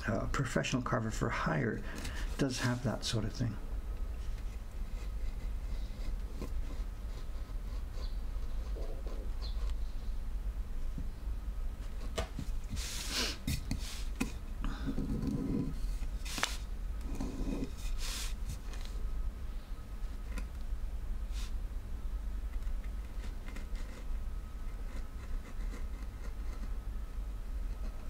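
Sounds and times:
chisel carving wood: 22.6 - 24.1, 24.7 - 26.8, 27.6 - 28.0.

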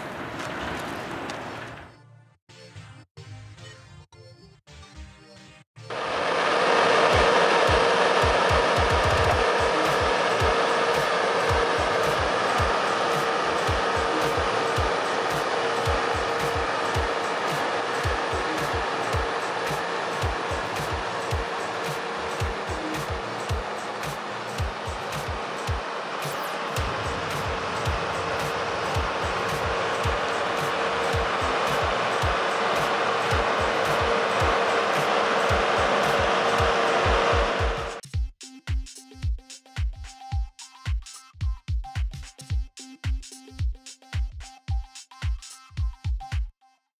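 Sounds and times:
diesel engine roaring: 0.0 - 1.9, 5.9 - 38.0
background music with beat: 7.0 - 46.6.

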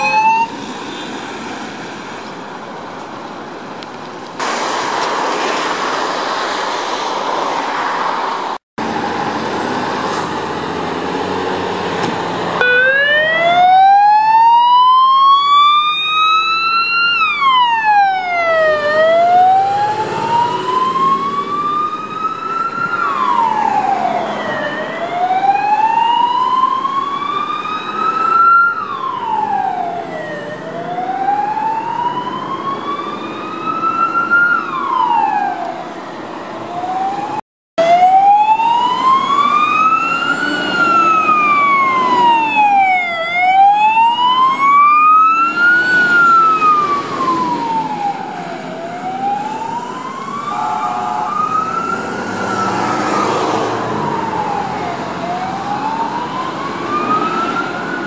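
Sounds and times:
fire engine siren wailing: 0.0 - 1.0, 8.8 - 58.0
faint second siren: 0.0 - 1.1, 12.5 - 58.0
engine and road noise: 0.0 - 58.0.

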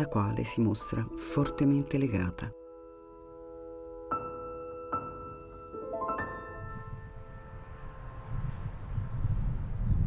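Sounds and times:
soft piano chord: 2.5 - 9.1.

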